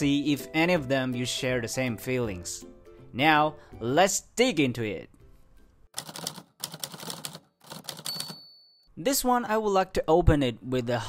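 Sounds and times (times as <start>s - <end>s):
high ding: 8.1s - 8.9s.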